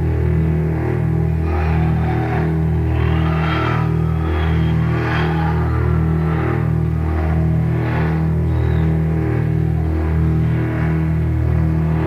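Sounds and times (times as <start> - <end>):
heavy metal low chord droning: 0.0 - 12.0.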